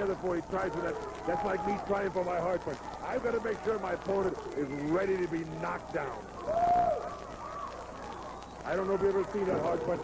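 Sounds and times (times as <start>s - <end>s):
arena background noise: 0.0s - 10.0s
faint wavering voices: 0.0s - 10.0s.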